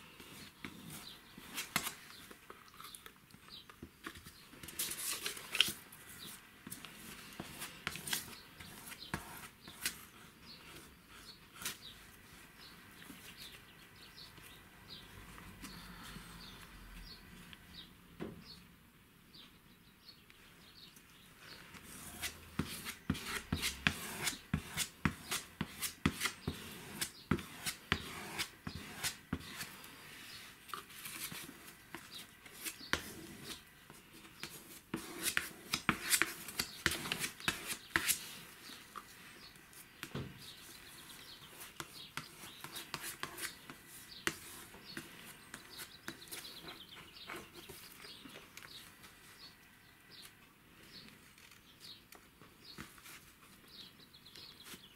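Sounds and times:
paper pages handled: 0:04.0 - 0:09.0.

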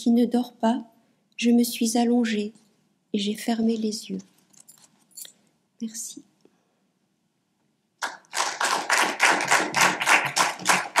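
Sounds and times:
small audience clapping: 0:08.0 - 0:11.0.

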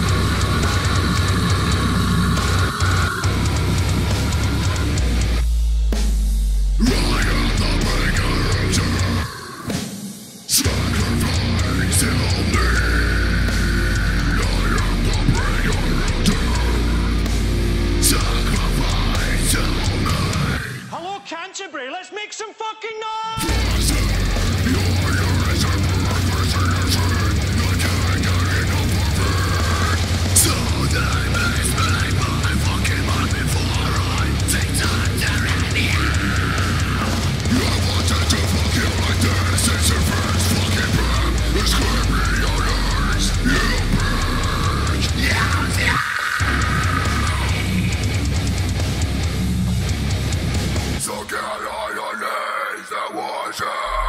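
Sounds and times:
harsh growled vocal: 0:00.0 - 0:05.4, 0:06.8 - 0:21.1, 0:23.4 - 0:54.0
distorted guitars: 0:00.0 - 0:21.3, 0:23.3 - 0:54.0
drums: 0:00.0 - 0:21.4, 0:23.3 - 0:54.0
heavy metal music: 0:00.0 - 0:21.9, 0:23.2 - 0:54.0
heavy metal song: 0:00.0 - 0:22.4, 0:23.2 - 0:54.0.

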